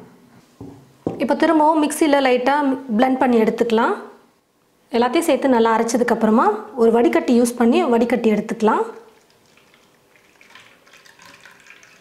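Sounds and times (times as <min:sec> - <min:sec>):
juice dripping through strainer into bowl: 0:08.9 - 0:12.0.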